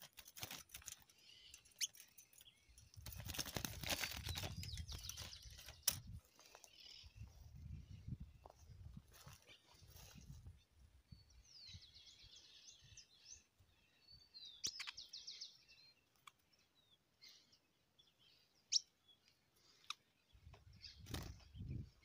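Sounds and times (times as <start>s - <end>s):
songbird trilling: 11.4s - 16.0s.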